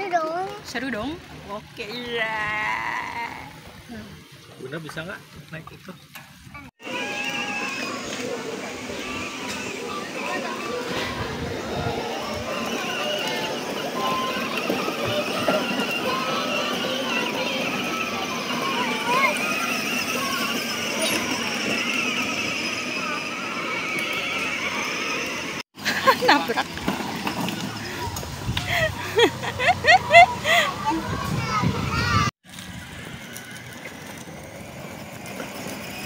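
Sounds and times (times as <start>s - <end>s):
busy background noise: 3.5s - 32.3s.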